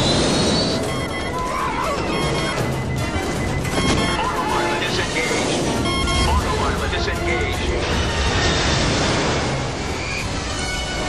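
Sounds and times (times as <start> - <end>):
dramatic film score: 0.0 - 11.0.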